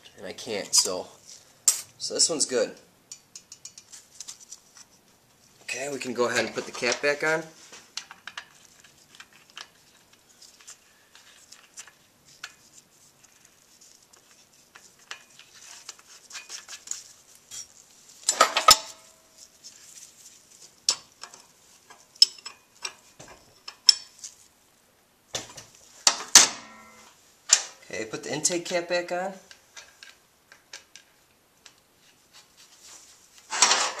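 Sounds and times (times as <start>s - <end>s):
metallic clicks and scrapes of tools: 3.1s - 4.9s, 14.1s - 19.5s.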